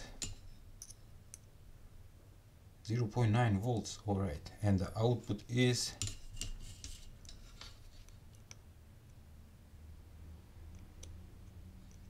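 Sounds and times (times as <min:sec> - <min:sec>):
low steady hum: 0:00.0 - 0:12.0
light scraping: 0:06.0 - 0:08.2.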